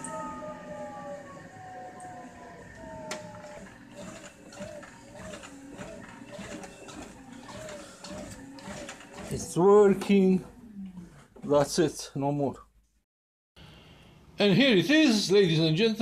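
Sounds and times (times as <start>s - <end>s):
treadmill motor whining: 0.0s - 11.9s.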